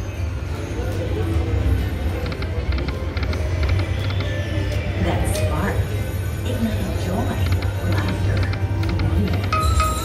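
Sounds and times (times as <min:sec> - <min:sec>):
low casino floor rumble: 0:00.0 - 0:10.0
slot machine music: 0:00.0 - 0:10.0.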